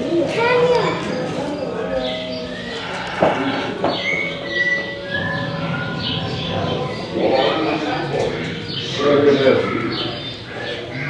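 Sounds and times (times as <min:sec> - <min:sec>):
film soundtrack over speakers: 0:00.0 - 0:11.0
indistinct voices: 0:00.0 - 0:11.0.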